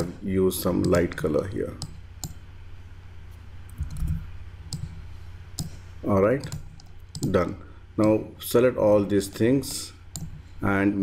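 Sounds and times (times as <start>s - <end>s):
steady low hum: 0.0s - 11.0s
computer mouse clicking: 1.8s - 2.4s, 3.7s - 5.8s, 6.4s - 7.4s, 10.1s - 10.4s.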